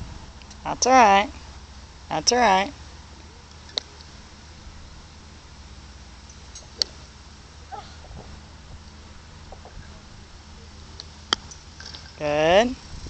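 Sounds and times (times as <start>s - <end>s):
low outdoor rumble: 0.0s - 13.0s
golf club striking ball: 6.3s - 7.1s, 10.9s - 12.1s.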